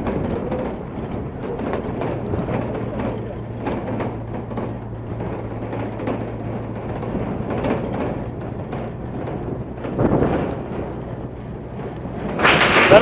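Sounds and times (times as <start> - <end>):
engine hum: 0.0 - 13.0
rough road noise: 0.0 - 13.0.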